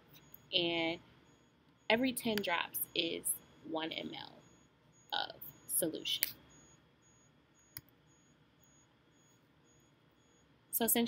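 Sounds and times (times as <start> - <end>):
faint high-pitched beeping: 0.0 - 11.0
computer mouse click: 2.3 - 2.5, 7.7 - 8.0.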